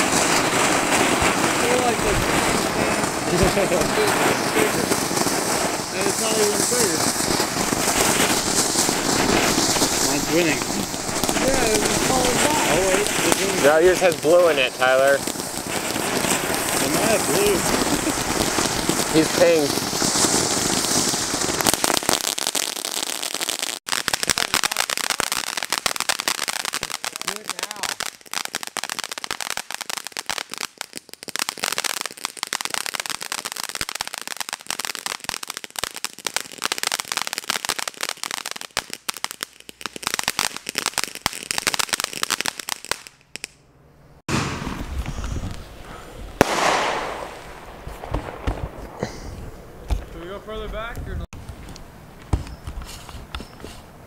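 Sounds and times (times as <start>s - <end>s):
fireworks hissing and crackling: 0.0s - 43.6s, 44.2s - 54.0s.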